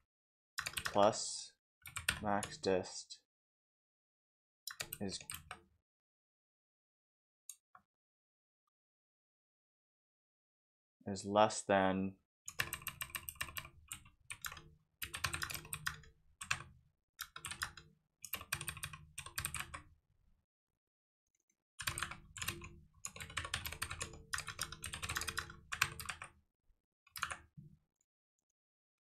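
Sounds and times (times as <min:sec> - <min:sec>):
computer keyboard typing: 0:00.6 - 0:01.0, 0:01.9 - 0:02.5, 0:12.5 - 0:19.8, 0:21.8 - 0:26.3, 0:27.2 - 0:27.5.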